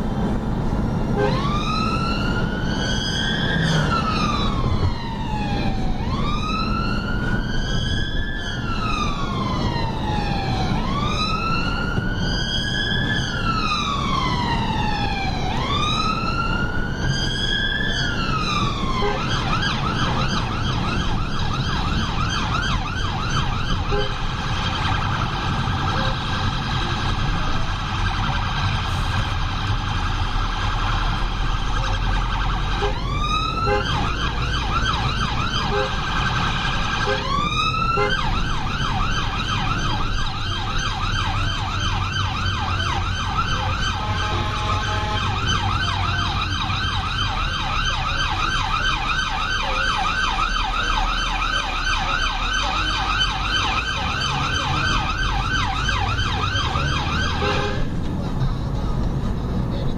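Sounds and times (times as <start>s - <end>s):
emergency vehicle siren: 0.0s - 59.9s
engine and road rumble: 0.0s - 59.9s.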